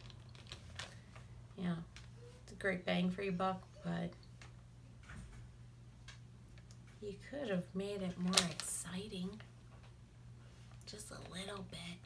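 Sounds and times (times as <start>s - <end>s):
faint clicks and taps: 4.1s - 7.0s.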